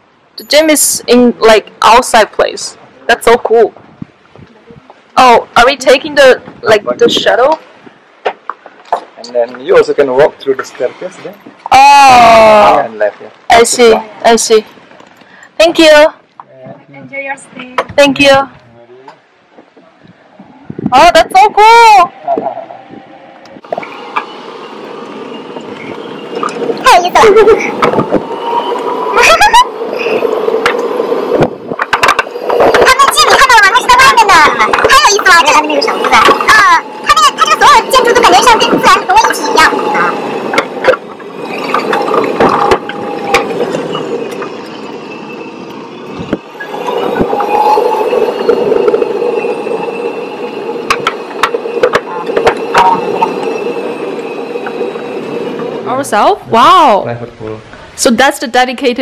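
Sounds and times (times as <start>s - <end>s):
buggy running on paved path: 29.1s - 44.8s.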